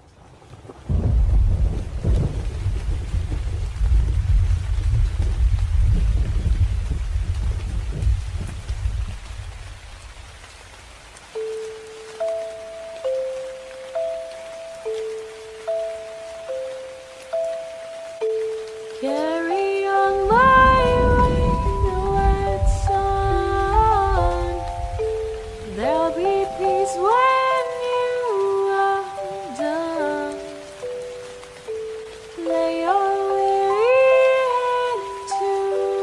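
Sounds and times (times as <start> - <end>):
rain hiss: 0.0 - 36.0
thunder rumbling: 0.4 - 10.4, 20.0 - 27.5
slow lullaby melody: 11.2 - 36.0.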